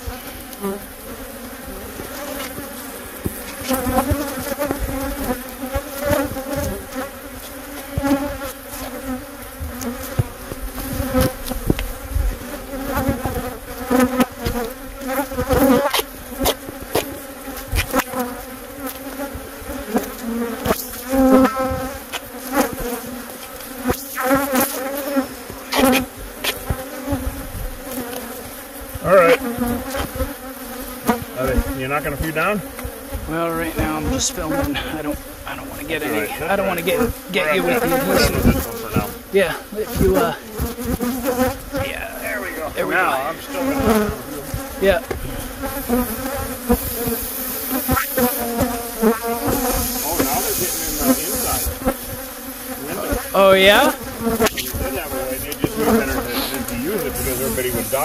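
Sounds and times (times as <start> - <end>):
bees buzzing loudly: 0.0 - 58.0.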